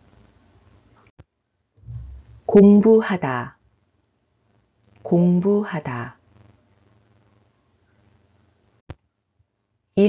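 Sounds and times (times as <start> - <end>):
faint recording hiss: 0.0 - 10.0
faint low sound: 1.8 - 3.2.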